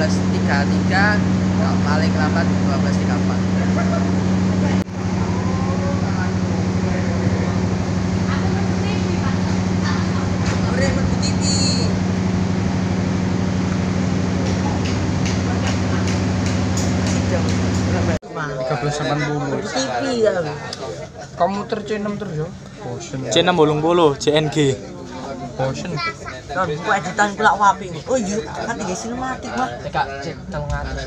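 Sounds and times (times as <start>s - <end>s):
people talking: 0.0s - 12.0s, 14.3s - 31.0s
diesel train engine idling: 0.0s - 18.2s.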